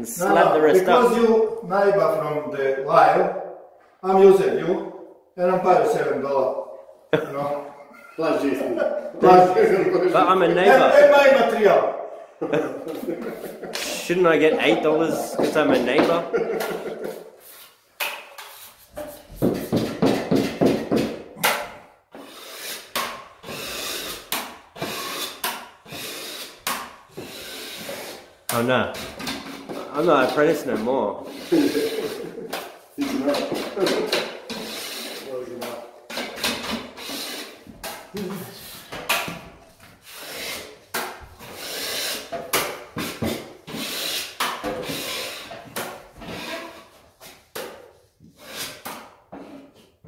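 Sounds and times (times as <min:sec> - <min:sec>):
hand tool scraping plaster: 0:12.9 - 0:50.0
knife scraping cement: 0:22.2 - 0:28.3, 0:33.1 - 0:35.3.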